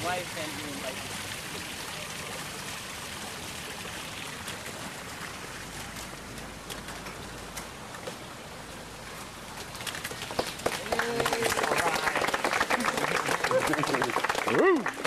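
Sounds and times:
light rain falling: 0:00.0 - 0:15.0.

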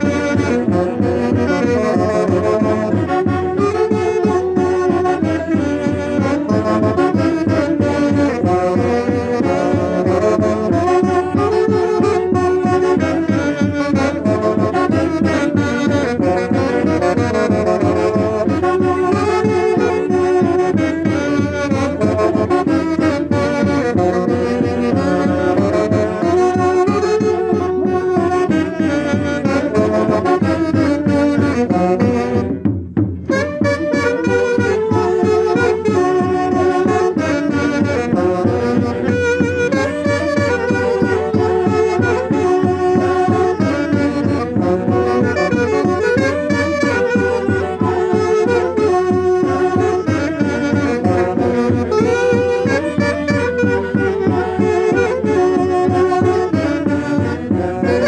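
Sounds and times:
saxophones playing melody: 0:00.0 - 0:58.0
steady beat: 0:00.0 - 0:58.0.

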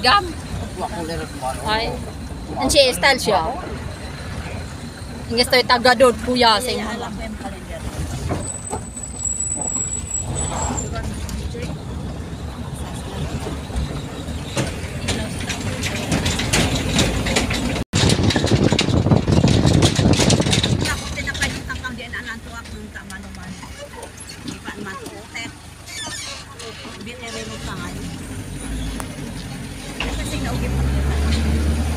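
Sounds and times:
vehicle engine and tyres rumbling: 0:00.0 - 0:31.9
wheels clattering over steel bridge: 0:00.0 - 0:31.9
high thin squeal: 0:08.3 - 0:11.2.

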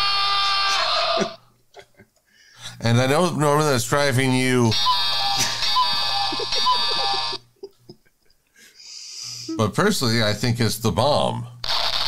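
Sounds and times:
buzzing held tone: 0:04.3 - 0:07.5.

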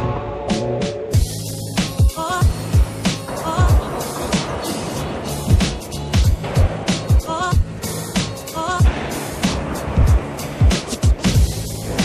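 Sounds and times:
deep sliding kick drums: 0:01.2 - 0:12.0.

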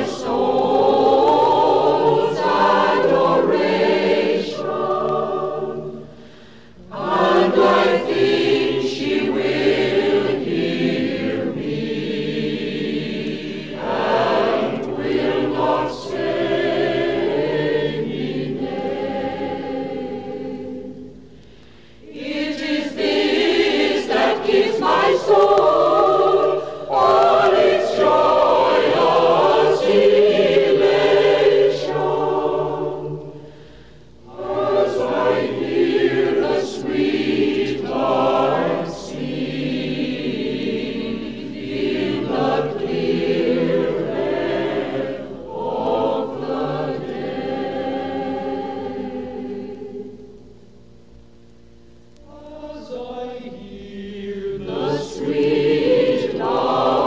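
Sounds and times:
choir singing: 0:00.0 - 0:06.2, 0:06.8 - 0:21.2, 0:22.0 - 0:50.4, 0:52.2 - 0:57.0.

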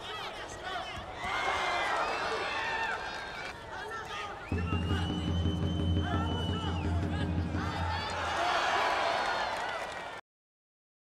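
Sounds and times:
murmur of arena crowd: 0:00.0 - 0:10.2
spectators shouting: 0:04.5 - 0:10.1.

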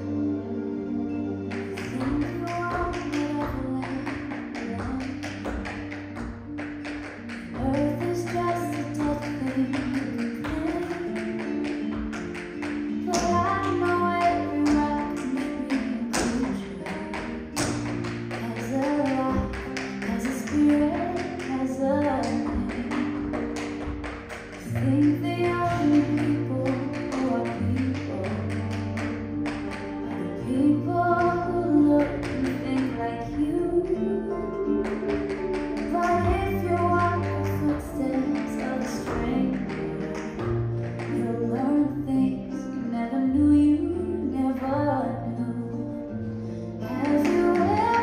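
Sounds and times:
tap shoes on stage floor: 0:01.5 - 0:30.2, 0:31.2 - 0:33.1, 0:34.6 - 0:41.6, 0:46.8 - 0:48.0.

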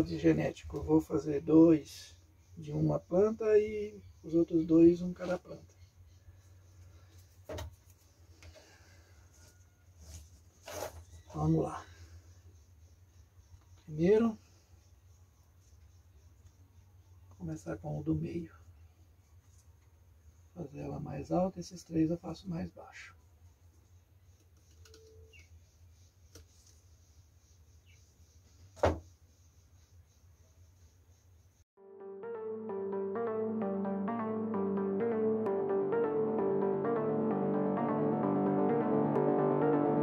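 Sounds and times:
short knock: 0:28.8 - 0:29.1.

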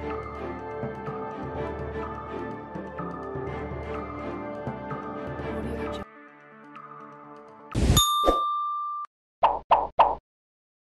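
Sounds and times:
soft background music: 0:00.0 - 0:07.7
ringing ding: 0:08.0 - 0:09.1.

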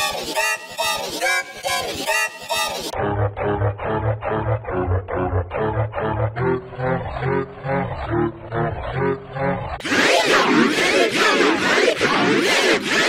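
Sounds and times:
distorted pulsing music loop: 0:00.0 - 0:13.0
deep bass: 0:03.0 - 0:10.5
bright distorted sound: 0:09.8 - 0:13.0.

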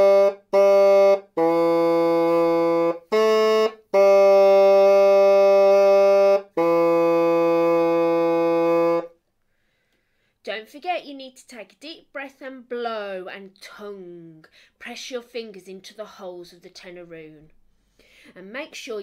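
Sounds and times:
bassoon playing slow notes: 0:00.0 - 0:09.2.

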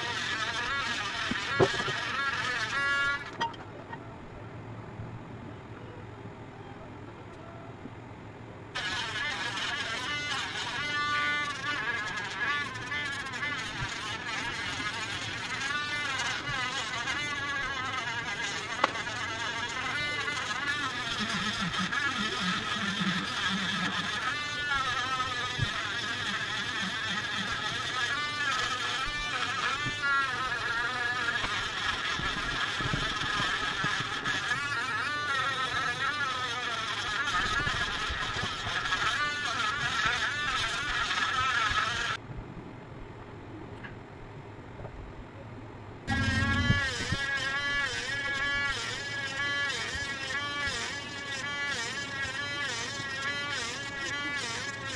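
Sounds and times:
engraving pen buzzing whine: 0:00.0 - 0:03.5, 0:08.7 - 0:42.2, 0:46.1 - 0:54.9.

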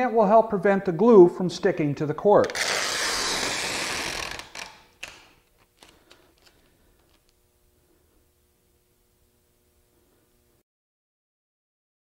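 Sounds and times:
packing tape unwinding: 0:02.4 - 0:07.4.

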